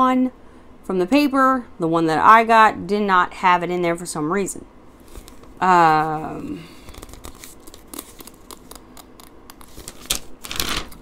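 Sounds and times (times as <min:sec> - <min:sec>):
paper rustling and crinkling: 0:06.9 - 0:08.8, 0:09.6 - 0:11.0.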